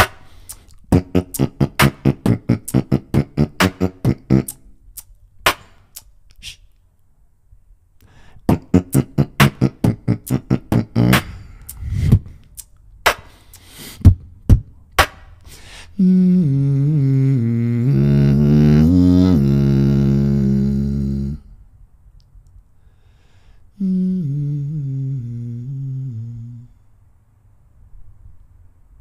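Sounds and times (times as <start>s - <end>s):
beatboxing mouth percussion: 0.0s - 6.8s, 8.4s - 21.5s
hummed bass tone: 16.0s - 21.7s, 23.8s - 26.8s.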